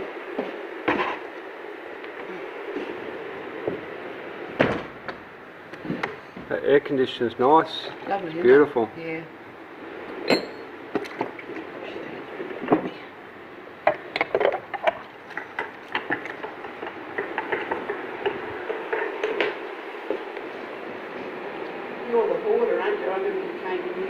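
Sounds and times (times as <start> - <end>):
indoor room noise: 0.0 - 24.0.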